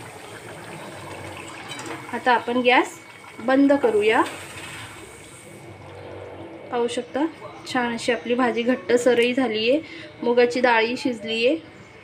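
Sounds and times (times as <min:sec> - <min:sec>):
curry simmering with soft hiss: 0:00.0 - 0:11.9.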